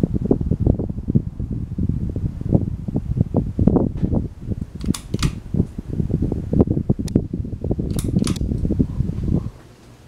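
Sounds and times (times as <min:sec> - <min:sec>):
ceiling fan air buffeting microphone: 0:00.0 - 0:10.0
pull-chain switch clicks: 0:04.8 - 0:05.4, 0:07.9 - 0:08.5.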